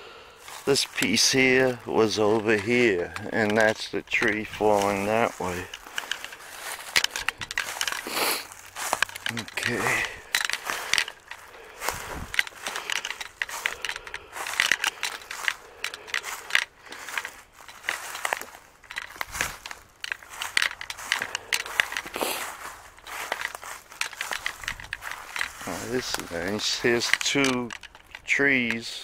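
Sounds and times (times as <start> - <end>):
footsteps on dry leaves: 0.0 - 29.0.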